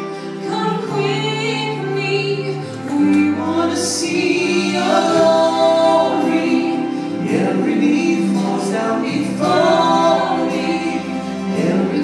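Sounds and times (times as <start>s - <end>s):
man and boy singing together: 3.0s - 12.0s.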